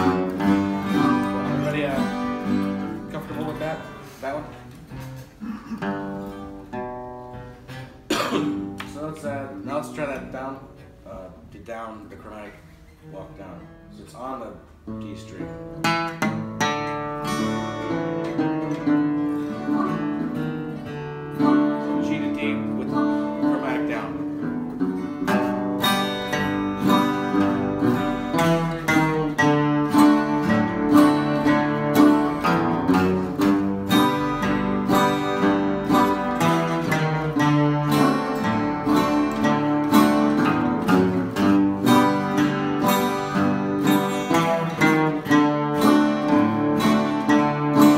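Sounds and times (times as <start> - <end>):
acoustic guitar strumming: 0.0 - 11.1, 11.9 - 47.9.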